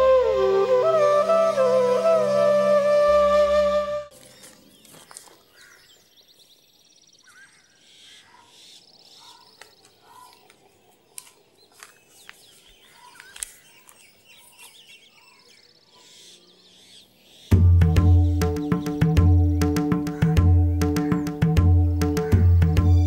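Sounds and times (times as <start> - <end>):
faint outdoor ambience: 0.0 - 23.0
small birds chirping: 4.1 - 23.0.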